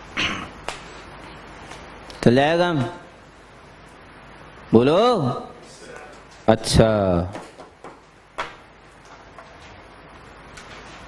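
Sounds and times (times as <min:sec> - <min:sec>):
man speaking: 0:04.7 - 0:07.4.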